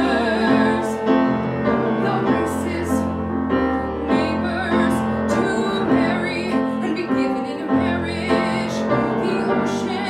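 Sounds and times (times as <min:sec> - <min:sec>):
cello: 0:00.0 - 0:10.0
person singing with vibrato: 0:00.0 - 0:10.0
piano: 0:00.0 - 0:10.0.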